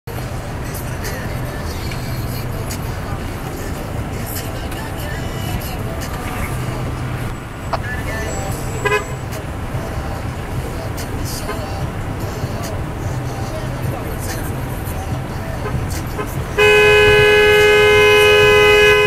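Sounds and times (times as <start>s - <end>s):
distant voices: 0.1s - 19.0s
vehicle engines idling: 0.1s - 19.0s
vehicle horn toot: 8.1s - 9.4s, 11.4s - 11.9s, 15.5s - 19.0s.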